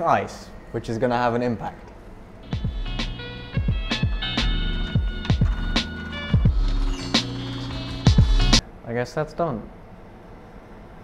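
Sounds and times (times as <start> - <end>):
background music with a beat: 2.4 - 8.6.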